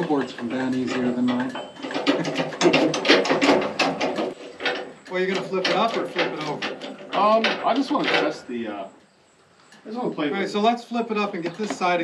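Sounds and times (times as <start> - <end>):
wood knocking on sawmill: 0.0 - 8.7, 11.2 - 12.0.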